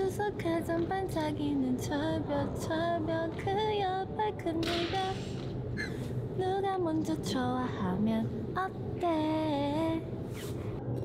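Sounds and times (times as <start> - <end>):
woman singing unaccompanied: 0.0 - 5.4, 6.4 - 10.1.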